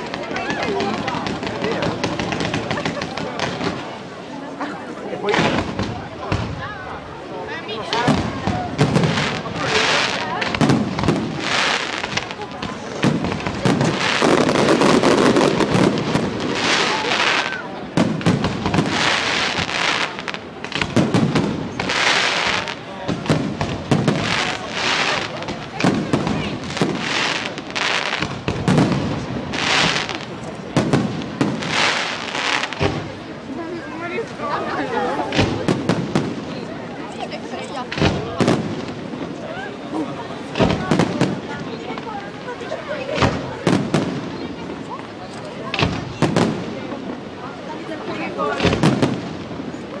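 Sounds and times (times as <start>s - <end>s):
fireworks bangs: 0.0s - 50.0s
crackling hiss of sparks: 21.8s - 29.0s.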